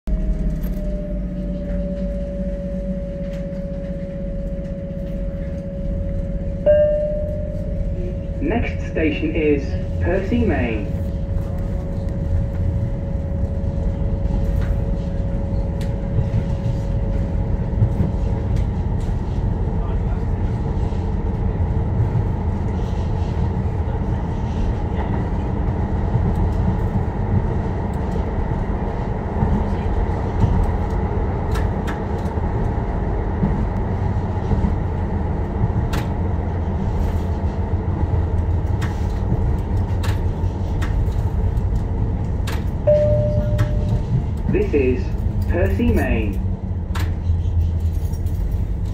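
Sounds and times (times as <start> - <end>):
train rumbling on rails: 0.0 - 48.9
steady train whine: 0.1 - 48.9.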